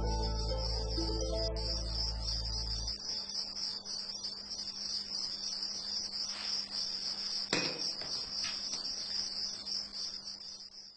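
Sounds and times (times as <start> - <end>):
crickets chirping: 0.0 - 10.9.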